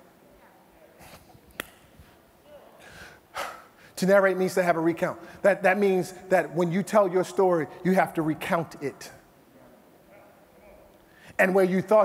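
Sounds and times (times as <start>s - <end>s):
faint room noise: 0.0s - 12.0s
man's sharp intake of breath: 2.8s - 4.0s.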